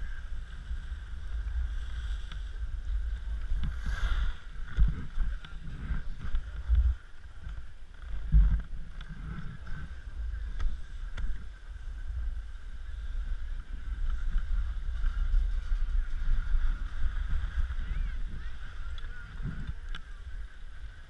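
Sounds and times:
skis scraping over snow: 0.0 - 21.0
wind buffeting microphone: 0.0 - 21.0.

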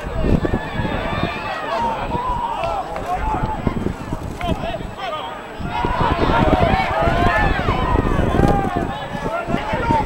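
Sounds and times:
people shouting: 0.0 - 3.8, 5.1 - 10.0.

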